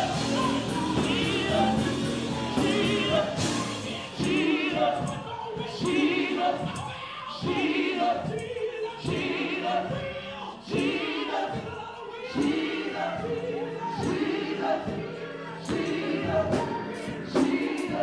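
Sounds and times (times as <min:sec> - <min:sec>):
choir and congregation singing: 0:00.0 - 0:18.0
gospel band playing: 0:00.0 - 0:18.0.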